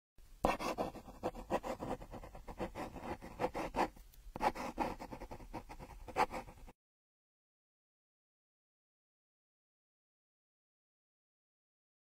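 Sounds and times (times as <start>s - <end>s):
pencil scratching on paper: 0.4s - 6.8s.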